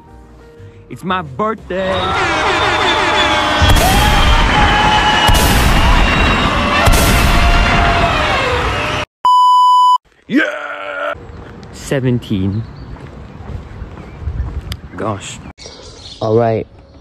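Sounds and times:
heavy booms: 2.8s - 9.0s.

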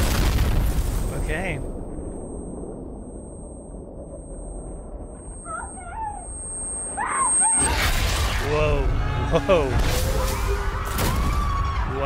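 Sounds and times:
chaotic destruction noise: 0.0s - 2.1s, 7.6s - 12.0s
low rumble: 0.0s - 11.9s.

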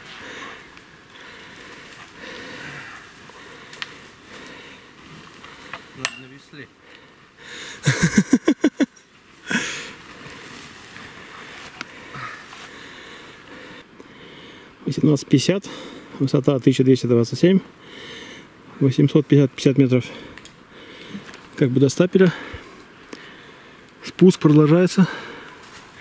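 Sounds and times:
heavy breathing: 0.0s - 6.0s, 6.7s - 8.1s, 9.4s - 14.8s, 17.7s - 18.8s, 20.0s - 21.4s, 22.2s - 24.0s, 25.0s - 26.0s
rustling of grass and ferns: 0.0s - 26.0s.

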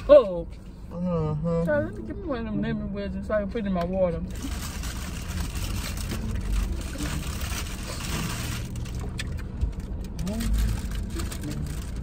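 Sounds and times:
car interior rumble and hiss: 0.0s - 12.0s.

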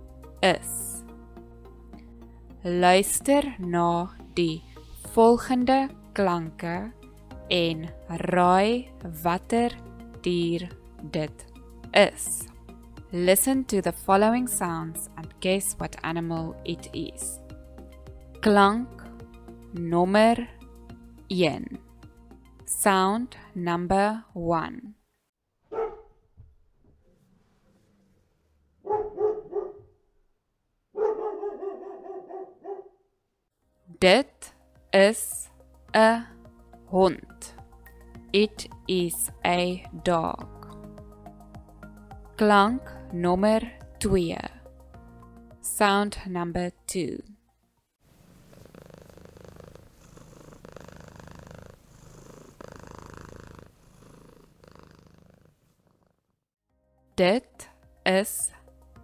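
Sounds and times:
dog barking: 25.7s - 26.2s, 28.8s - 30.0s, 30.9s - 33.1s
cat purring: 48.1s - 56.4s.

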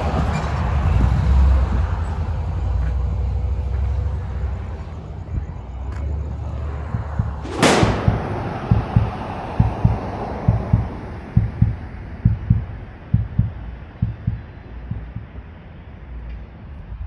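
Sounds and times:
heartbeat thumps: 0.9s - 2.0s, 6.7s - 15.4s.

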